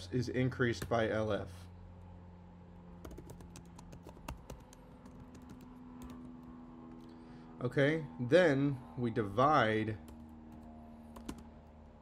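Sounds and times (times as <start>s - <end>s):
typing on computer keyboard: 3.0s - 6.4s, 10.5s - 11.4s.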